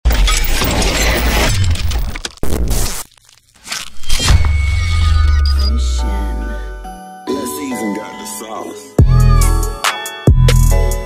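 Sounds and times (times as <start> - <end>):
glass shattering effect: 0.1 - 5.9.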